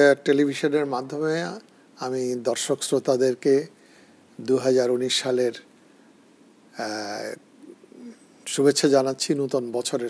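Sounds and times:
faint low murmur: 0.0s - 10.0s.

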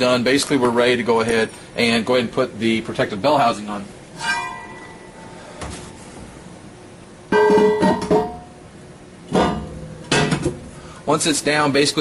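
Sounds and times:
metal clank ringing: 4.2s - 5.3s.

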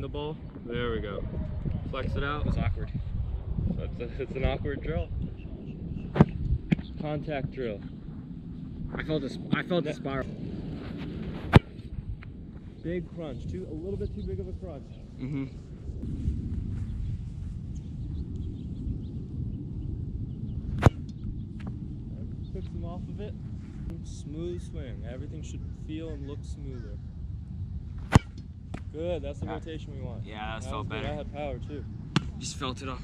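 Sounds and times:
foot kicking football: 6.1s - 6.9s, 20.7s - 21.8s, 28.0s - 28.9s
boot kicking football: 28.1s - 28.9s.

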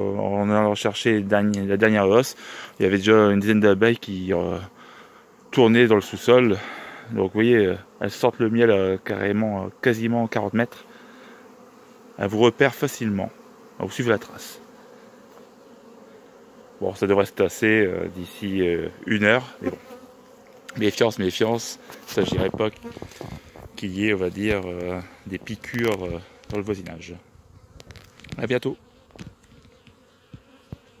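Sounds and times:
honeybees buzzing: 0.0s - 31.0s.

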